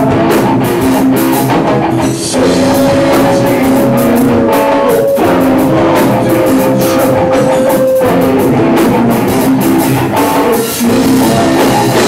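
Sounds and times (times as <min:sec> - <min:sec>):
electric guitars: 0:00.0 - 0:12.0
drum kit playing: 0:02.3 - 0:09.8.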